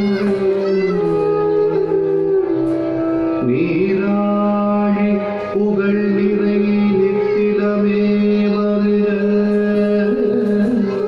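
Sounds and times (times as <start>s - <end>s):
voice holding a long note: 0.0s - 3.9s.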